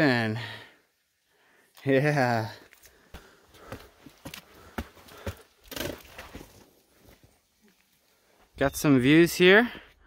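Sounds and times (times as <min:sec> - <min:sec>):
footsteps on rock steps: 0:02.8 - 0:07.3.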